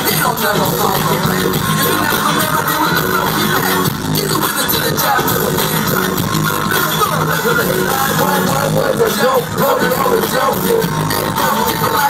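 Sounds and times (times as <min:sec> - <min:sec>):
live hip hop band music: 0:00.0 - 0:12.0.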